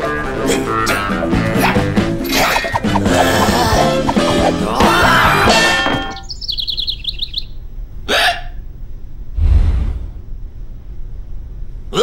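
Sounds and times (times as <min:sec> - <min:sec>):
cartoon music: 0:01.0 - 0:06.3
high chirps: 0:02.2 - 0:07.6.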